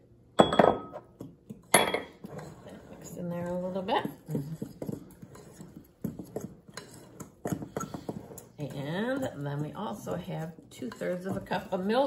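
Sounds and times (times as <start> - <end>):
fork scraping glass bowl: 2.1 - 12.0.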